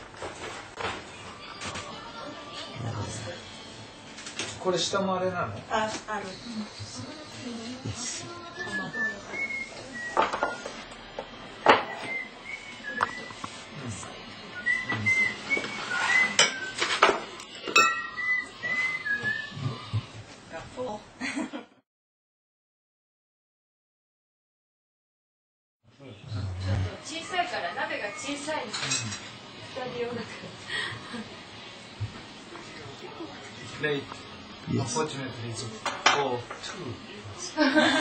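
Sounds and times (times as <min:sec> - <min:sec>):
dishes and cutlery clinking: 0:10.1 - 0:10.8, 0:11.6 - 0:12.2, 0:15.6 - 0:18.2, 0:28.6 - 0:29.4, 0:35.8 - 0:36.7
ceramic dishes clinking on table: 0:17.7 - 0:18.2.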